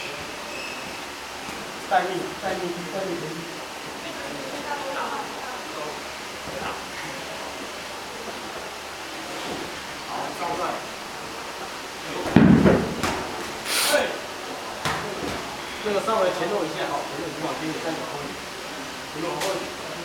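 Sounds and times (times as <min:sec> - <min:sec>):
scattered voices in a hall: 0:00.0 - 0:20.0
loud thump: 0:12.3 - 0:13.2
brief hiss: 0:13.6 - 0:14.2.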